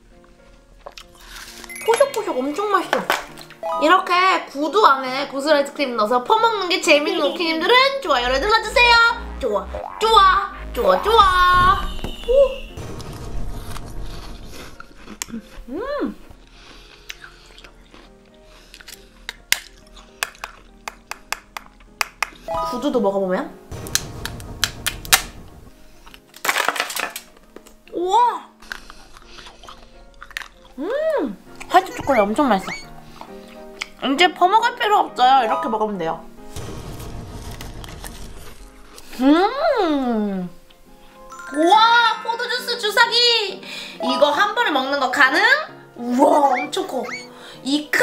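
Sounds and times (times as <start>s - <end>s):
soft background music: 0.0s - 48.0s
chocolate chewing and crunching: 0.6s - 1.6s, 14.8s - 22.0s, 28.6s - 34.0s.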